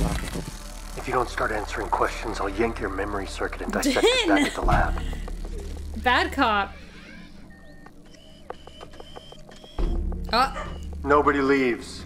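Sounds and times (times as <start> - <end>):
steady electronic tones: 0.6 - 11.7.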